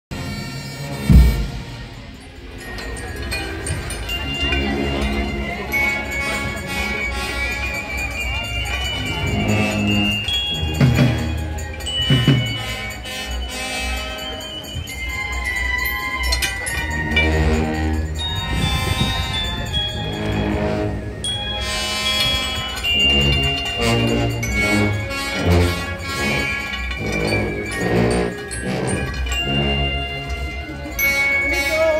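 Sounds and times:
brass band chords: 0.1 - 2.2, 4.4 - 8.3, 8.9 - 14.7, 16.9 - 31.9.

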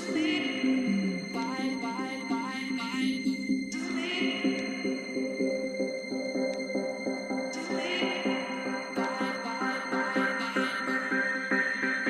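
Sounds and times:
rippling synth melody: 0.6 - 2.4
electronic dance music pulse: 7.3 - 12.0.

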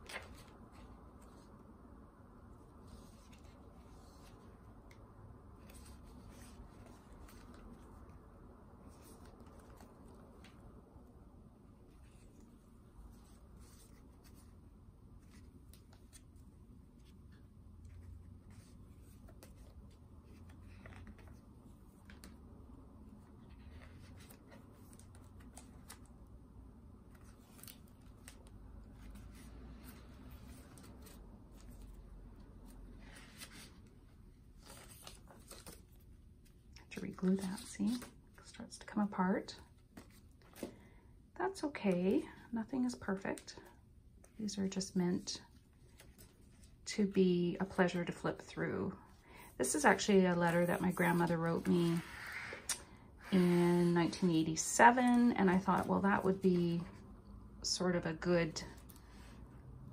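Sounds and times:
paper pages turning: 0.0 - 1.4, 27.1 - 32.0, 34.6 - 36.1
stiff pages rustling and crackling: 0.0 - 1.5, 2.8 - 8.2, 8.8 - 10.8, 11.8 - 26.3, 27.0 - 41.0
low room hum: 0.0 - 59.9.

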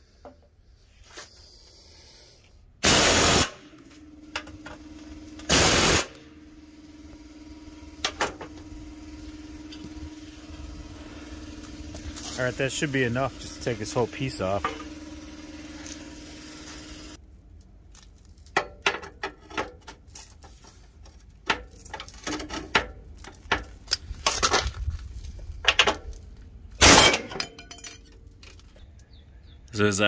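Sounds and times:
pneumatic air hammer bursts: 1.7 - 3.8, 5.4 - 6.3, 26.8 - 27.4
steady hiss: 5.5 - 6.1
metal clinks and knocks: 26.8 - 28.7.

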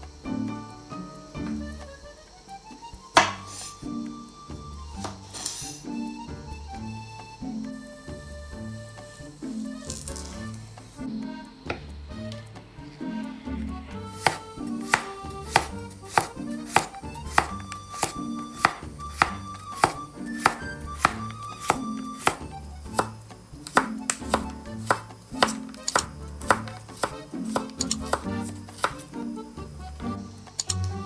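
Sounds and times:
background music: 0.0 - 31.0
knife slicing on wooden board: 14.2 - 29.1.

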